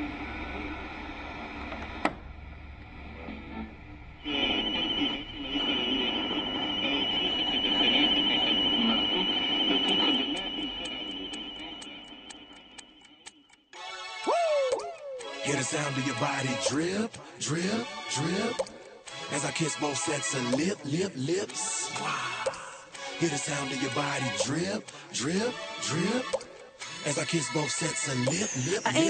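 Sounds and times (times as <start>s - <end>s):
steady high tone: 3.1s - 13.4s, 28.0s - 29.0s
music: 13.7s - 29.0s
voice: 14.3s - 18.6s, 19.3s - 26.4s, 27.0s - 29.0s.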